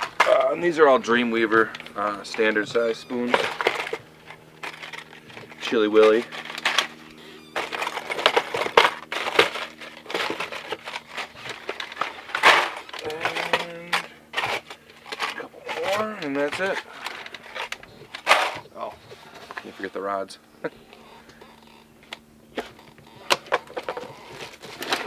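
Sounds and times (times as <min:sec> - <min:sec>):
plastic packs crinkling and clacking: 0:00.0 - 0:19.9, 0:21.0 - 0:25.0
person speaking: 0:00.2 - 0:03.6, 0:12.9 - 0:14.2, 0:15.2 - 0:17.0.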